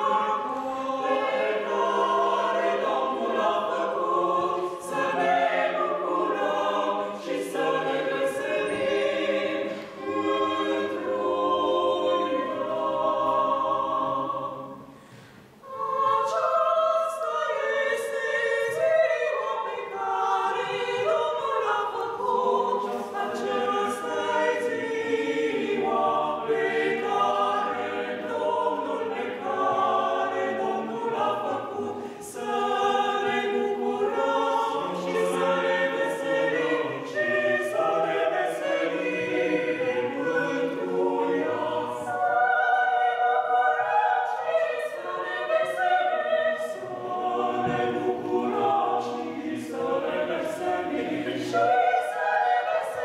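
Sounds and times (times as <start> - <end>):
choir singing a cappella: 0.0 - 53.0.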